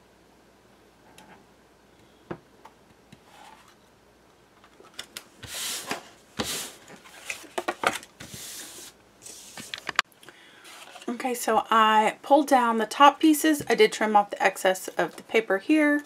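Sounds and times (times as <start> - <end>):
chipboard and paper sliding: 5.4 - 7.6, 8.2 - 9.9.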